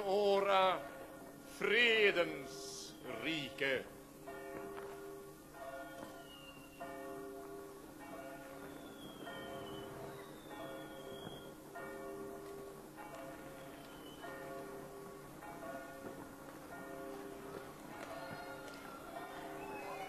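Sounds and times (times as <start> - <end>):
church bell tolling: 0.0 - 20.0
faint whistles falling in pitch: 6.2 - 6.9, 8.6 - 11.5, 13.6 - 14.2.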